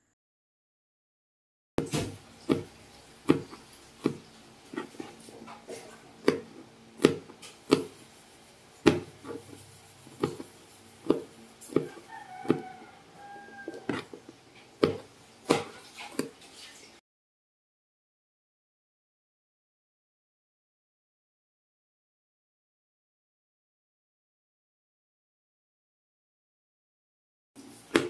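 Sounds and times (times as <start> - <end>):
knife chopping on cutting board: 1.8 - 8.2, 8.8 - 14.2, 14.8 - 16.4.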